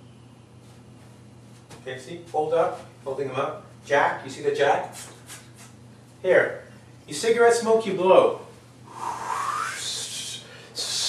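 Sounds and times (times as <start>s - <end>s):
man blowing air through lips: 8.9s - 11.0s.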